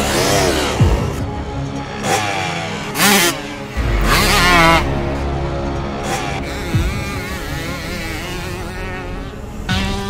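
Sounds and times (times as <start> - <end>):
background music: 0.0 - 10.0
dirt bike engine revving: 0.0 - 10.0.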